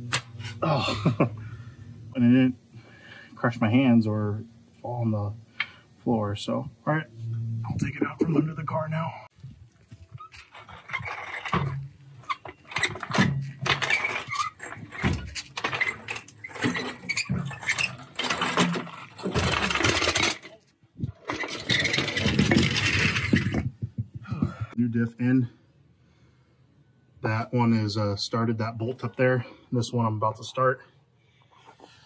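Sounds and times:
metal scraping: 10.0 - 24.6
metal knocks and clanks: 10.3 - 24.8.

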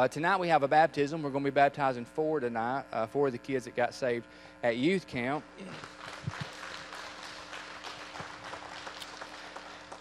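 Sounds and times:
crowd applauding: 5.6 - 10.0.

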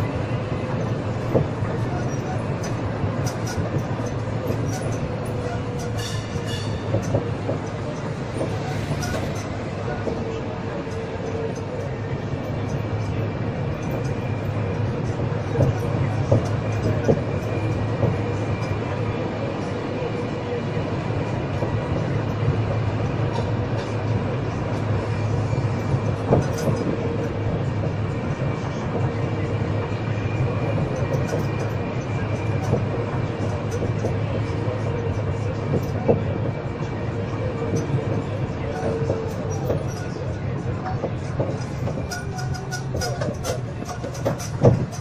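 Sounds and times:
road train rumble with whine: 0.0 - 45.0.

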